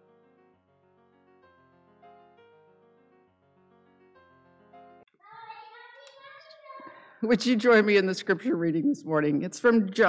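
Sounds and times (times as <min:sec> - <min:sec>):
faint high voice: 0:05.2 - 0:07.1.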